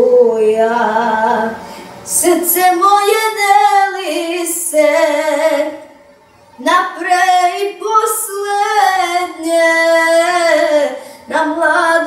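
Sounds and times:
boy singing into a microphone: 6.6 - 12.0.

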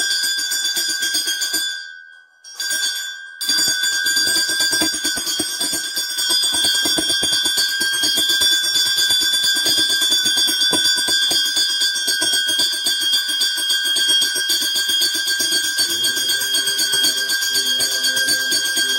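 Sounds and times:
bell ringing rapidly: 2.8 - 18.9.

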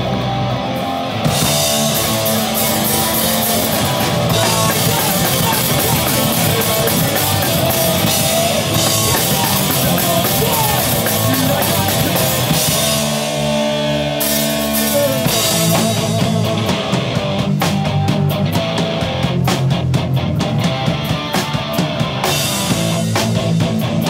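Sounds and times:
drum kit: 0.0 - 24.0
electric guitars: 0.0 - 24.0.

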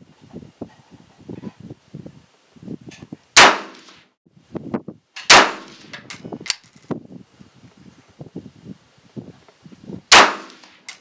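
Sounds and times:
rifle shots with echo: 3.4 - 4.0, 5.3 - 5.9, 10.1 - 10.8.

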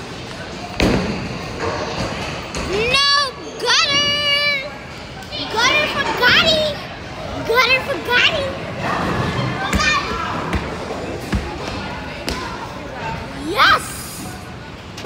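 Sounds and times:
children calling out and squealing: 13.4 - 14.5.

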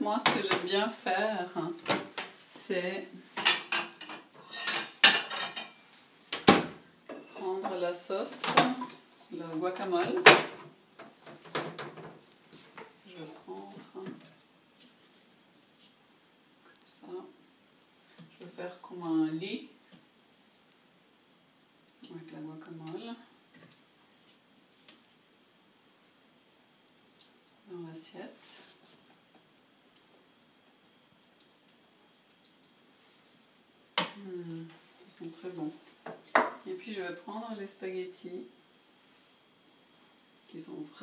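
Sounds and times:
woman's voice: 0.0 - 1.9, 2.5 - 3.2, 7.3 - 10.3, 13.1 - 14.2, 18.4 - 19.7, 27.7 - 28.7, 34.2 - 35.8, 36.7 - 38.5, 40.5 - 41.0.

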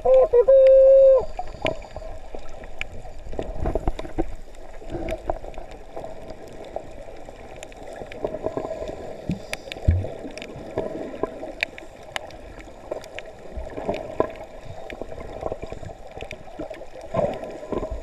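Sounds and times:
muffled underwater wash: 0.0 - 18.0
sharp underwater clicks: 9.2 - 10.6
low thump: 9.9 - 10.1.

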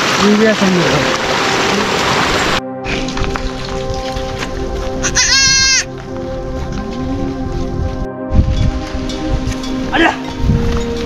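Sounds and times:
background music: 0.0 - 11.0
goat kid bleating: 5.0 - 5.9.

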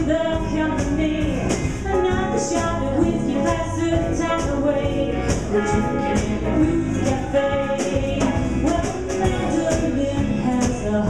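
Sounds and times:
blues band playing: 0.0 - 11.0.

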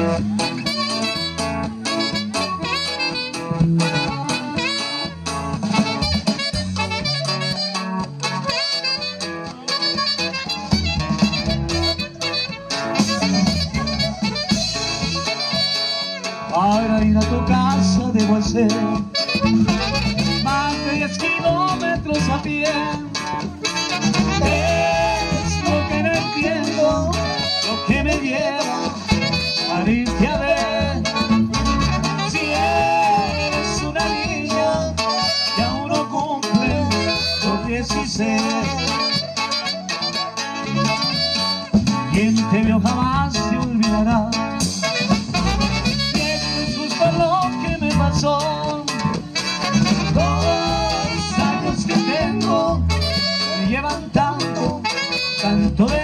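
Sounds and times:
accordion: 0.0 - 56.0
drums: 0.0 - 56.0
guitar: 0.0 - 56.0
person singing: 20.4 - 29.0, 29.6 - 39.2, 46.1 - 56.0.

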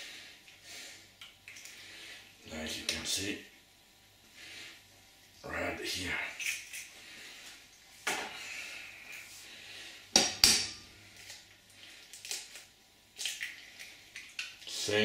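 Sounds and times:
egg cracking on metal bowl: 10.1 - 14.7.

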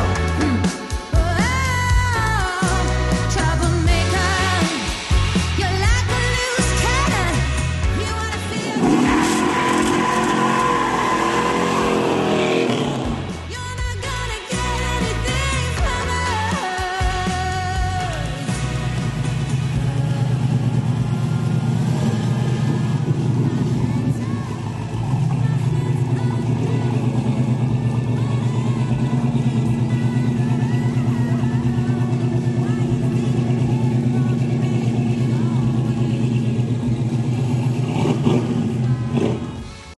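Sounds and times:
vee eight engine idling loudly: 0.0 - 13.5, 17.3 - 40.0.

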